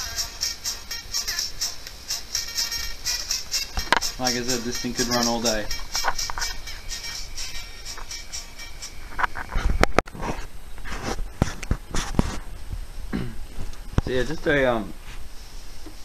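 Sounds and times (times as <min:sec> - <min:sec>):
music through plasma speaker: 0:00.0 - 0:09.8.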